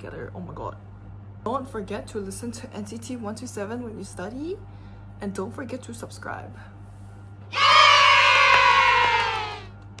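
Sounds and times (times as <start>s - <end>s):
high voices cheering yay: 7.5s - 9.7s.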